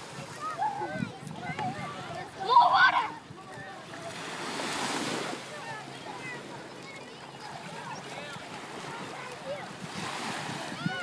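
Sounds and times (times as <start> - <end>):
wind on microphone: 0.0 - 5.3, 8.7 - 11.0
small waves on sandy beach: 0.0 - 11.0.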